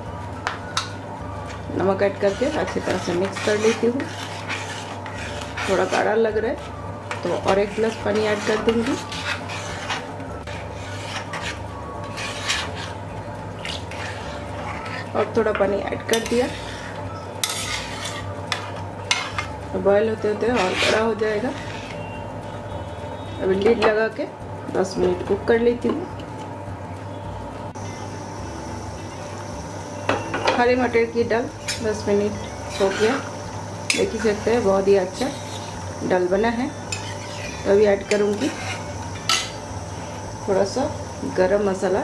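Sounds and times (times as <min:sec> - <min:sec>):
background hum: 0:00.0 - 0:42.0
steel spatula scraping pot: 0:01.4 - 0:22.2, 0:31.6 - 0:39.7
faint high whine: 0:27.0 - 0:42.0.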